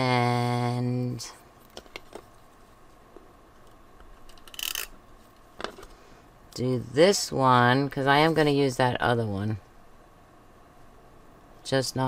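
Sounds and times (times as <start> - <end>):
faint handling noise: 1.5 - 6.1.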